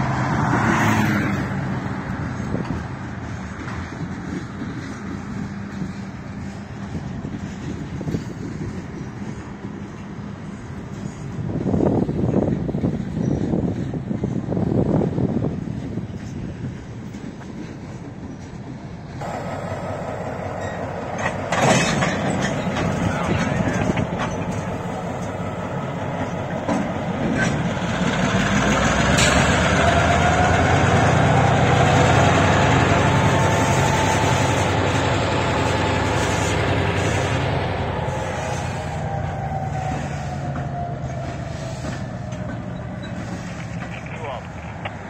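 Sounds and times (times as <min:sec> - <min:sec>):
diesel locomotive engine rumble: 0:00.0 - 0:45.0
faint wheel squeal: 0:38.1 - 0:44.3.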